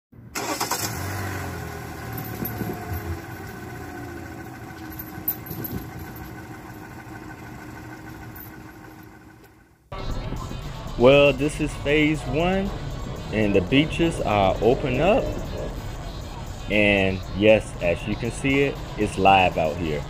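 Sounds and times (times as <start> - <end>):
engine starting and running: 0.2 - 20.0.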